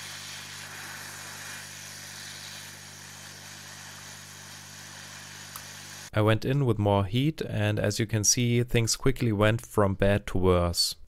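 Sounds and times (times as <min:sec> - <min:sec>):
hot air blowing: 0:00.0 - 0:06.1.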